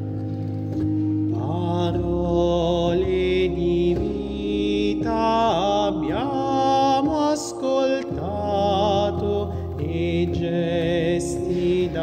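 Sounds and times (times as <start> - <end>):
church organ chords: 0.0 - 12.0
man singing hymn: 1.3 - 12.0.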